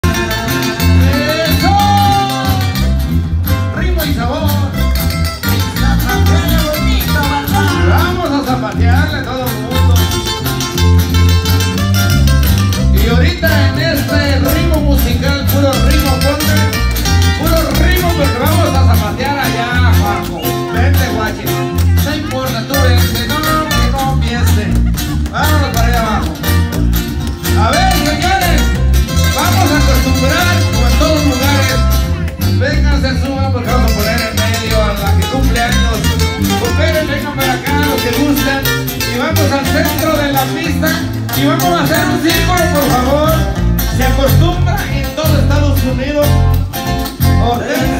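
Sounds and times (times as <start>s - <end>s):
bass beat: 0.0s - 47.9s
guitars: 0.0s - 47.9s
live band dance music: 0.0s - 47.9s.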